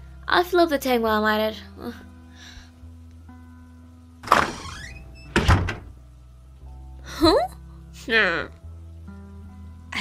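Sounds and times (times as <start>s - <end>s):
quiet background music: 0.0s - 10.0s
door shutting with a thud: 4.2s - 6.0s
door swinging open: 4.2s - 6.0s.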